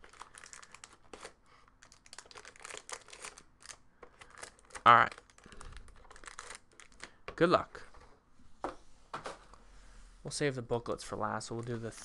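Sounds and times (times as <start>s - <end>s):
card wrappers crinkling: 0.0s - 7.2s.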